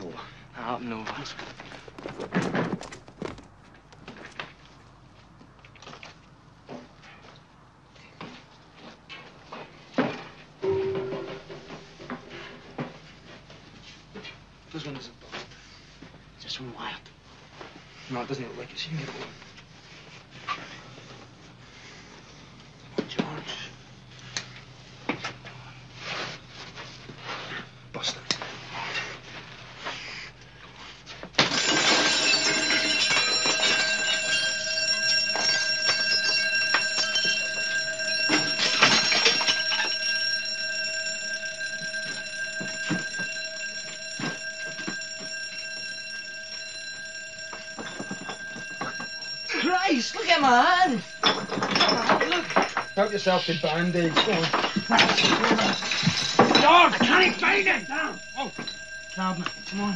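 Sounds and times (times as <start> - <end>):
alarm bell ringing: 10.6 - 11.9, 31.4 - 59.9.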